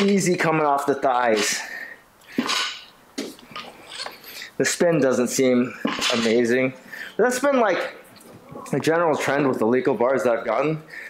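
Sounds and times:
person breathing: 1.5s - 2.5s, 4.2s - 4.6s, 6.8s - 7.2s.

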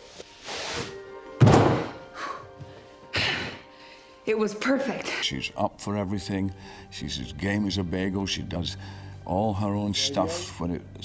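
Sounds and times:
quiet background music: 0.0s - 11.0s
heavy thud: 1.4s - 2.0s.

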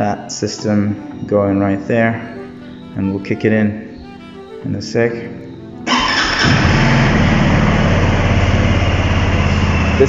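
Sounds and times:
motorcycle engine starting and idling: 5.8s - 10.0s.

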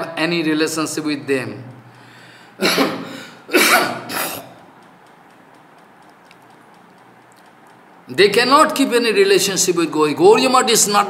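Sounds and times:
faint room hiss: 0.0s - 11.0s
man coughing: 2.6s - 4.6s.

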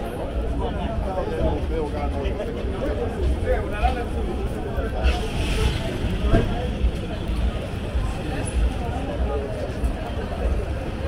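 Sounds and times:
low rumble of traffic: 0.0s - 11.0s
passers-by talking: 0.0s - 11.0s.

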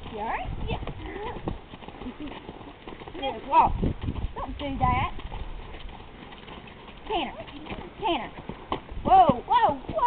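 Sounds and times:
hoofbeats on grass: 0.0s - 10.0s.

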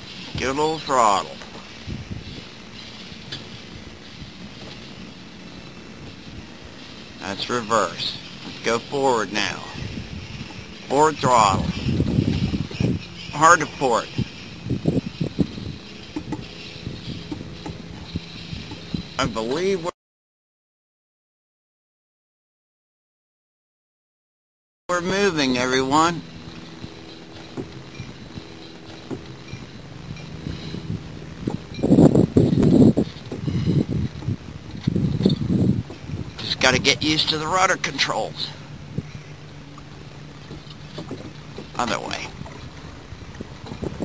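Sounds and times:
electric boat motor humming: 0.0s - 19.5s, 25.0s - 44.0s.

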